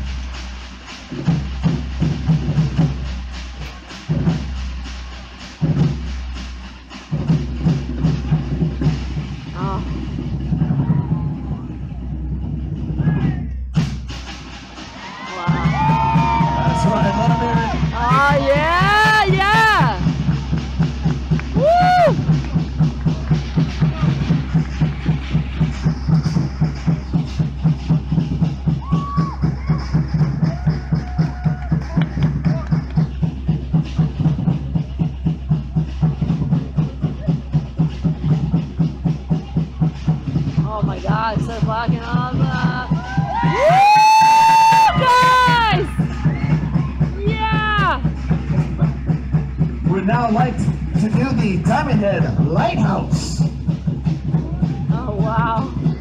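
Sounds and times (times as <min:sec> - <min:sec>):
fast steady drumming: 0:00.0 - 0:56.0
people yelling and whooping: 0:10.6 - 0:12.1, 0:14.8 - 0:20.6, 0:21.5 - 0:22.4, 0:28.7 - 0:32.7, 0:42.3 - 0:49.1, 0:54.4 - 0:56.0.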